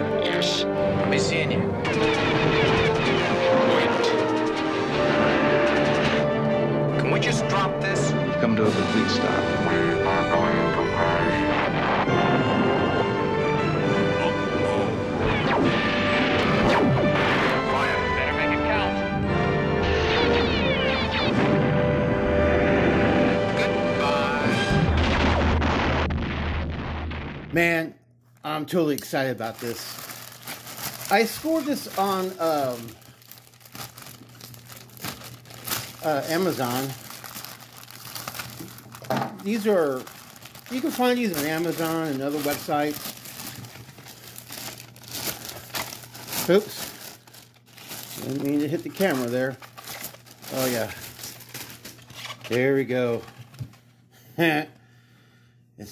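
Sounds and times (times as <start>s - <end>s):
sci-fi soundtrack music: 0.0s - 26.0s
plastic bag crinkling: 29.4s - 53.6s.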